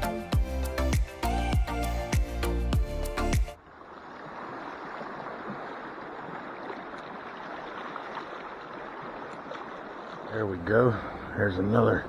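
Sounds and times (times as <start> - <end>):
background music: 0.0 - 3.6
river water flowing over riffles: 3.6 - 11.7.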